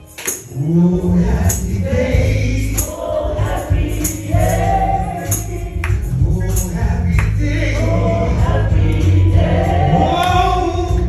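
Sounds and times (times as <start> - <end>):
tambourine-like strikes: 0.0 - 7.4
keyboard accompaniment: 0.0 - 11.0
man singing through microphone: 0.4 - 3.0, 4.6 - 11.0.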